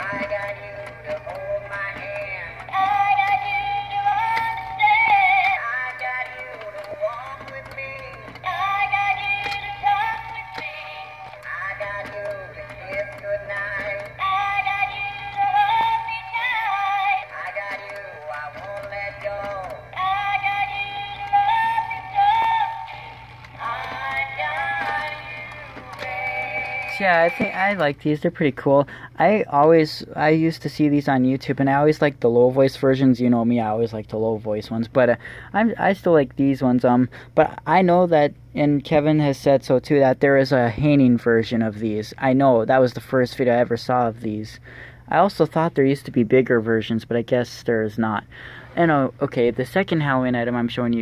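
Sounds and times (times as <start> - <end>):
tinny recorded duet singing: 0.0 - 27.3
steady low hum: 0.0 - 51.0.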